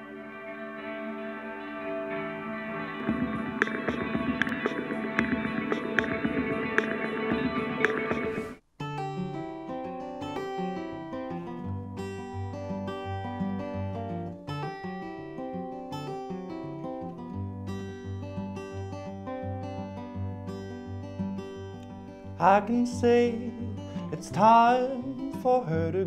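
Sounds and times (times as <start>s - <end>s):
acoustic guitar picking: 0.0s - 26.0s.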